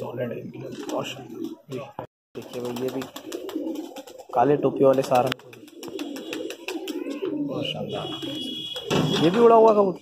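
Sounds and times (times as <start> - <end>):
pigeons cooing: 0.5 - 9.2.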